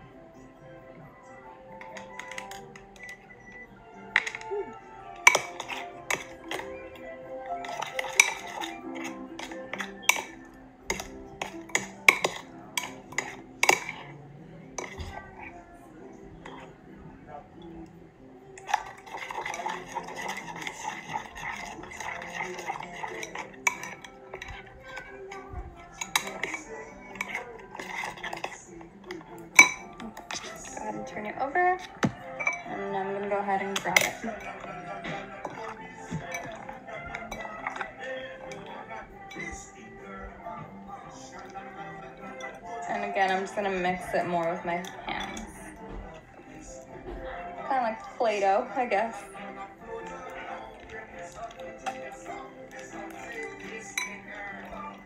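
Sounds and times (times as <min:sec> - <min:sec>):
background music: 0:00.0 - 0:55.0
spoon scraping glass bowl: 0:01.7 - 0:15.6, 0:16.3 - 0:16.9, 0:18.6 - 0:55.0.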